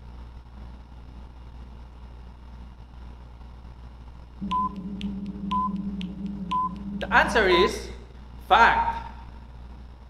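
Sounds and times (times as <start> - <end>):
short timer beeps: 4.4 - 7.2
ticking clicks: 4.4 - 7.3
steady low drone: 4.4 - 8.5.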